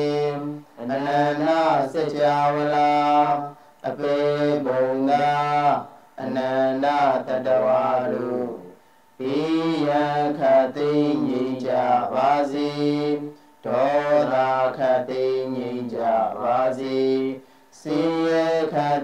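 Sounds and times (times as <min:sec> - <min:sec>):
person chanting devotional verses: 0:00.0 - 0:19.0.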